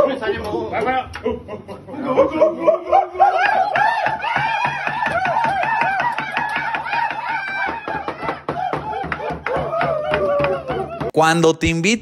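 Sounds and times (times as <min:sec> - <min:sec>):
people laughing hard: 0:01.1 - 0:04.6.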